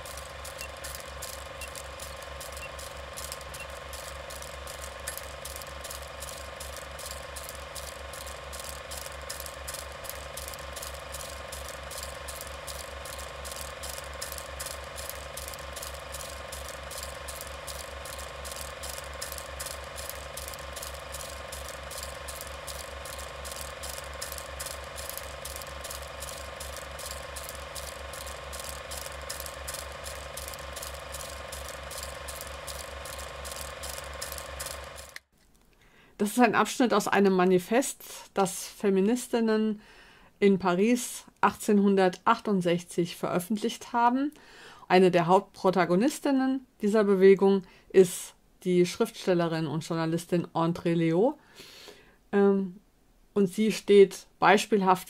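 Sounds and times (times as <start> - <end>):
film projector clattering: 0.0 - 35.3.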